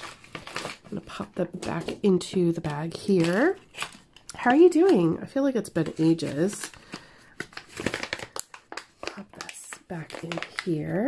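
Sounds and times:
plastic pouch crinkling: 0.0 - 11.0.

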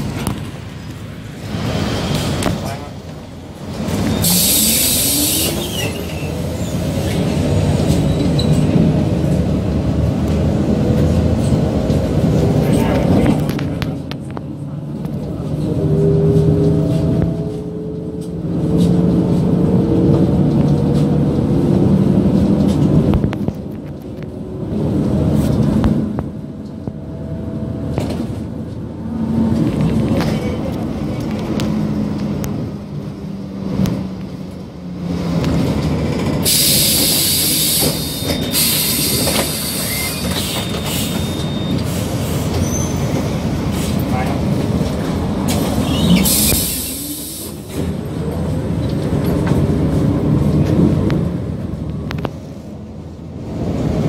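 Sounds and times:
bus engine whining: 0.0 - 54.0
loud air hiss: 4.2 - 5.8, 36.5 - 41.2, 46.2 - 47.7.

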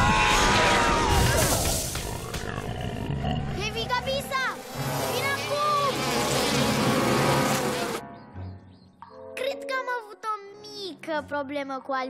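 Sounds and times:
cartoon bees buzzing: 1.9 - 8.2.

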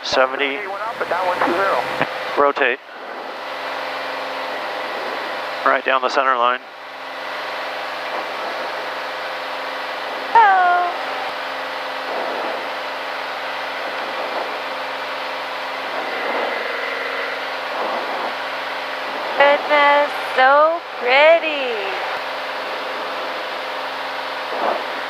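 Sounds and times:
aircraft engine and propeller drone: 0.0 - 25.0
person talking: 10.4 - 11.0, 19.4 - 22.1
voice exclamation: 10.4 - 11.0.

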